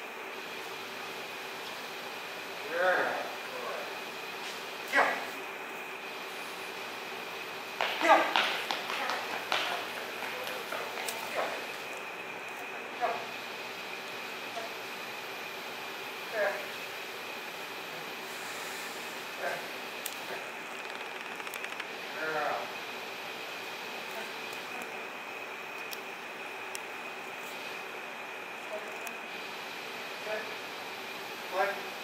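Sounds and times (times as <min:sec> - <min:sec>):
steady background hum: 0:00.0 - 0:32.0
man speaking to dog: 0:30.2 - 0:30.6, 0:31.5 - 0:31.9.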